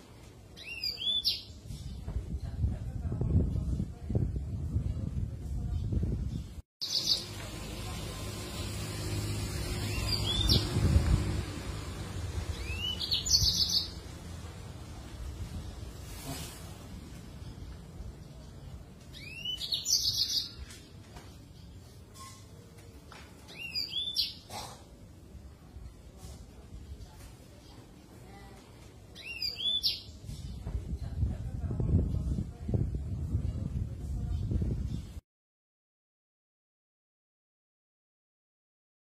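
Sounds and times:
canary singing: 6.8 - 7.4, 9.2 - 10.8, 12.5 - 14.0, 19.1 - 20.6
canary singing whistled notes: 12.6 - 13.9.

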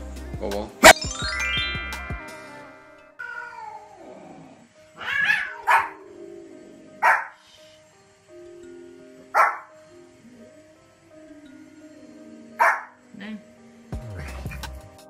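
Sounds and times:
quiet background music: 0.0 - 15.0
chime jingle: 0.8 - 3.2
cat meowing: 2.2 - 4.1, 5.0 - 6.0
small dog yapping: 5.0 - 6.0, 7.0 - 7.4.

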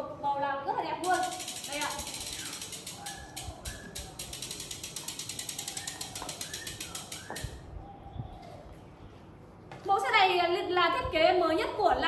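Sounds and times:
bicycle hub ticking rapidly: 1.0 - 7.6.

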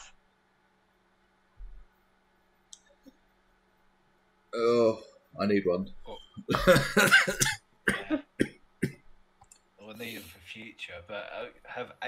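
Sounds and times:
person laughing: 6.5 - 7.4
short coughs: 6.5 - 9.0.

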